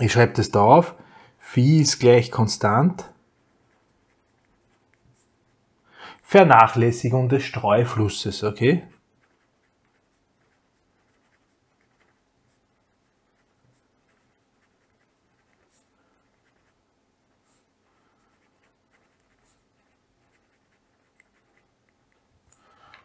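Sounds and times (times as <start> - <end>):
pencil scratching on paper: 3.0 - 5.7, 7.5 - 22.2.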